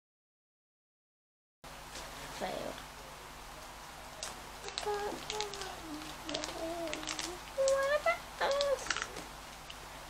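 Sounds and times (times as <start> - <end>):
plastic packets crinkling: 4.2 - 9.8
child humming: 4.6 - 8.9.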